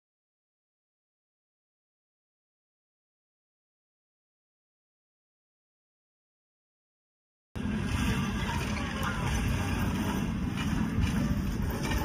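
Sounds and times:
low outdoor rumble: 7.6s - 12.0s
wind buffeting microphone: 7.6s - 12.0s.

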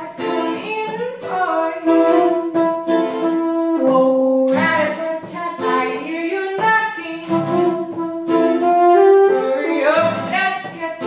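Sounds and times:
soprano saxophone melody: 0.0s - 11.0s
strummed acoustic guitar: 0.0s - 11.0s.

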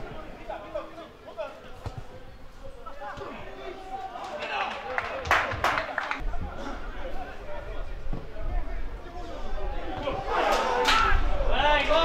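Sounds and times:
players shouting: 2.7s - 6.2s, 8.9s - 12.0s.

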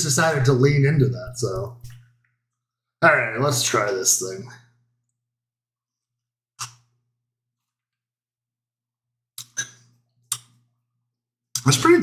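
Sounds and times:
breaths or lip smacks: 9.4s - 10.6s.

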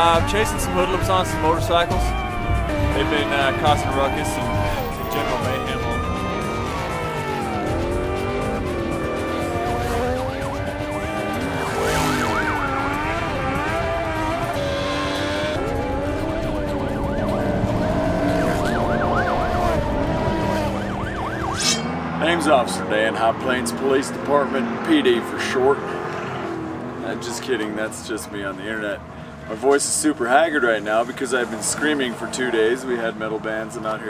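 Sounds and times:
music: 0.0s - 21.5s
police siren wailing: 0.0s - 23.1s
tyres skidding: 0.0s - 34.0s
vehicle engines revving: 0.0s - 34.0s.

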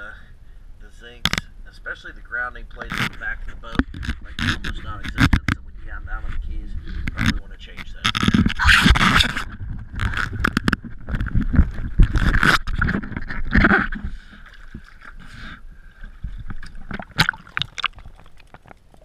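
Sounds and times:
water sloshing and splashing: 8.2s - 19.0s.

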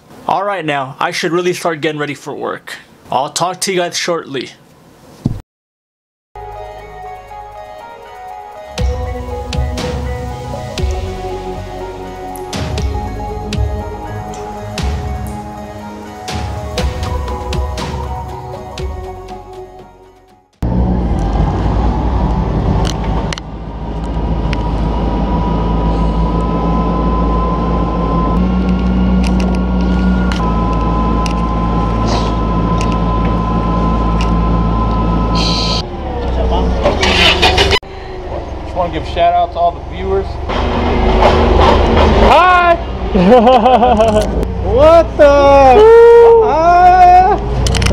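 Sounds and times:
forklift engine running: 8.8s - 20.0s, 20.6s - 45.8s.

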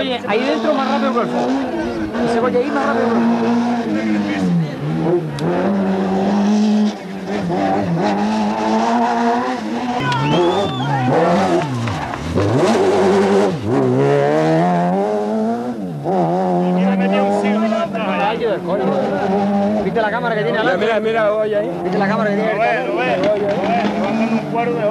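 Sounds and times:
rally car engine revving: 0.0s - 24.9s.

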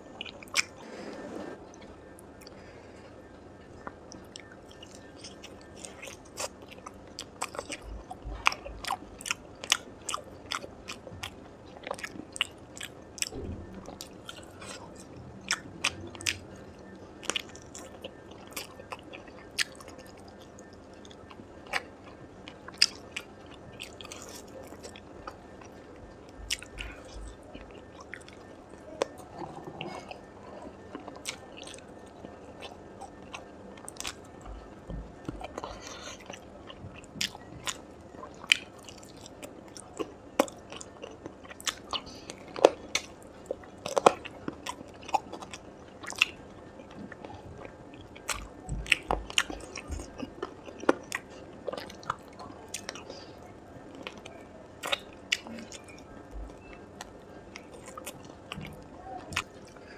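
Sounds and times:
biting and chewing meat: 17.2s - 53.3s.

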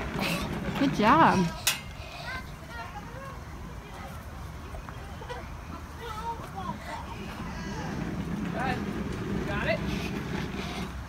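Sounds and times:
faint voices: 0.0s - 11.0s
road vehicle passing: 0.0s - 11.0s.

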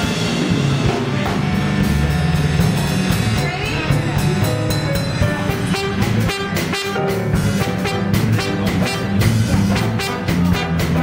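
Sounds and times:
drum kit: 0.0s - 11.0s
electric keyboard: 0.0s - 11.0s
trumpet and trombone: 0.0s - 11.0s.

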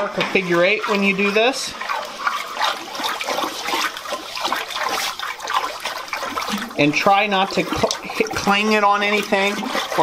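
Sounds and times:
water churning and bubbling: 0.0s - 10.0s.

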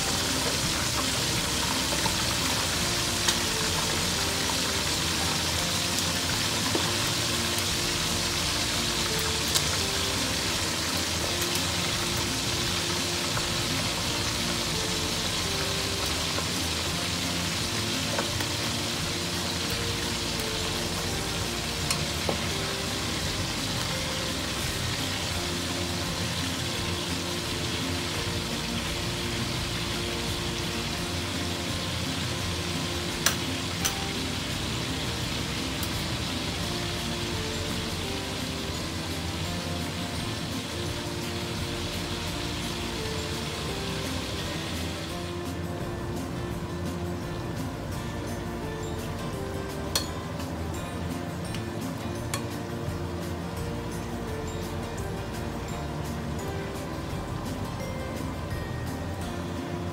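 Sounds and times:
chicken deep-frying in oil: 0.0s - 59.9s
soft background music: 0.0s - 59.9s
metal tongs clicking on pan: 33.2s - 34.0s, 49.9s - 50.2s.

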